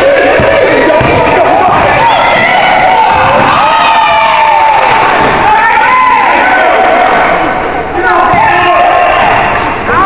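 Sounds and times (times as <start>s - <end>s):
spectators cheering and shouting: 0.0s - 10.0s.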